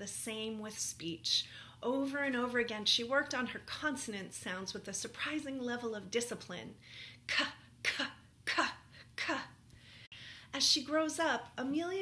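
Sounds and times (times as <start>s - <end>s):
woman voicing sharp k sounds: 7.3s - 9.6s.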